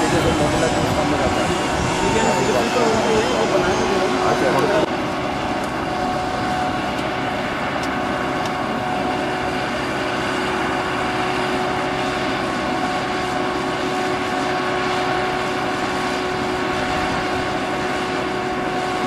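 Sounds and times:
aircraft machinery hum: 0.0s - 19.0s.

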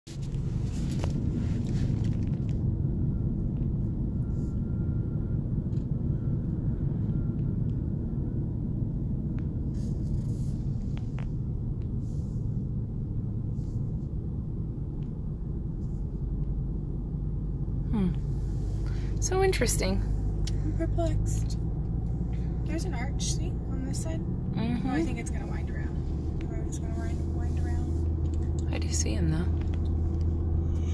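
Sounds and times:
car engine rumble: 0.1s - 30.9s
tyres on road: 0.1s - 30.9s.

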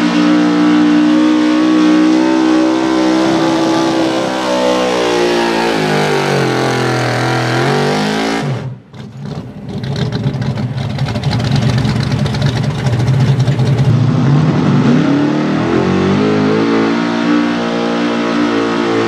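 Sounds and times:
truck engine revving under load: 0.0s - 10.4s, 11.3s - 19.0s.

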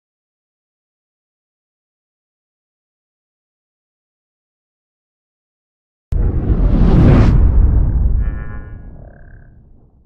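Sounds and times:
deep booming rumble: 6.1s - 10.0s.

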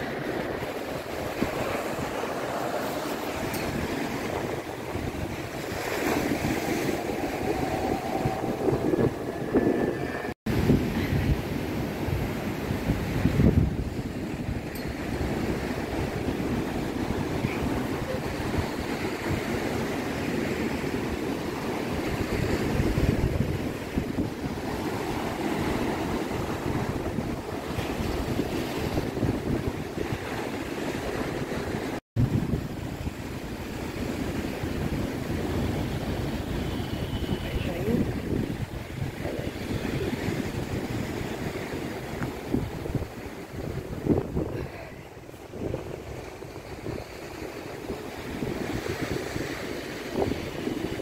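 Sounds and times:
sea waves breaking on beach: 0.0s - 51.0s
wind on microphone: 0.0s - 51.0s.

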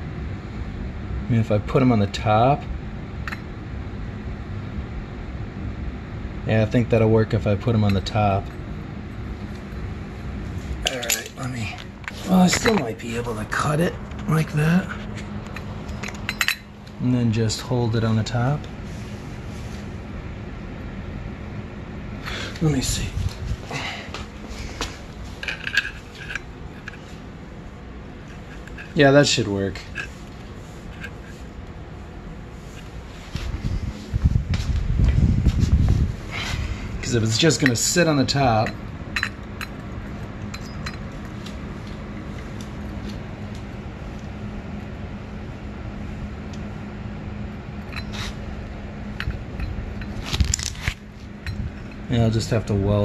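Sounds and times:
steady low hum: 0.0s - 53.0s
metal clamp clinks and taps: 15.5s - 16.6s
metal clamps clinking on metal: 15.9s - 16.7s, 40.4s - 41.1s.

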